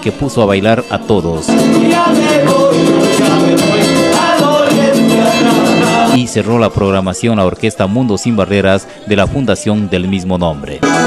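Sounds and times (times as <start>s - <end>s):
folk band playing dance music: 0.0s - 6.2s, 10.8s - 11.0s
guitars: 0.0s - 7.7s, 10.7s - 11.0s
drum beat: 1.5s - 6.2s.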